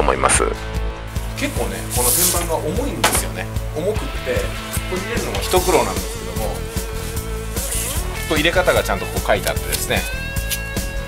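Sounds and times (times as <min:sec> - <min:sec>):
music with steady beat: 0:00.6 - 0:11.0
fabric bag rustling: 0:01.2 - 0:03.4, 0:04.6 - 0:08.2
fabric swish: 0:01.4 - 0:03.3, 0:04.7 - 0:08.0.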